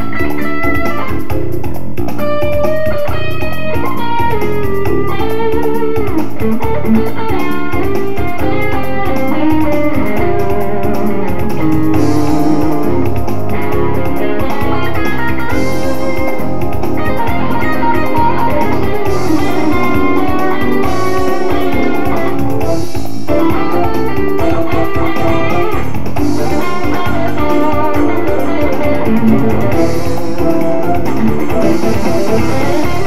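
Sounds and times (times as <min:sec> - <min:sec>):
electric guitar lead lines: 0:00.0 - 0:33.0
smooth jazz band: 0:00.0 - 0:33.0.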